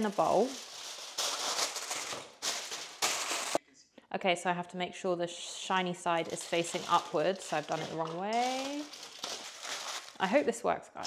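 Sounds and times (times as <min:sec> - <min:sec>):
aluminium foil crinkling: 0:00.0 - 0:03.6, 0:06.1 - 0:10.3.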